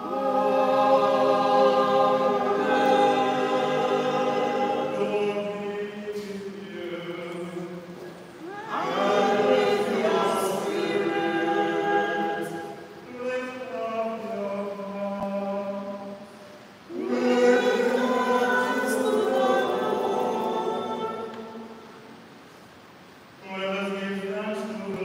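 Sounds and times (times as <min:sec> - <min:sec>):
voices singing liturgical chant: 0:00.0 - 0:22.4.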